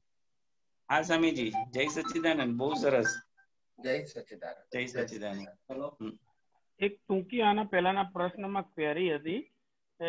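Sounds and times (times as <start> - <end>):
man speaking over video call: 0.9 - 6.4.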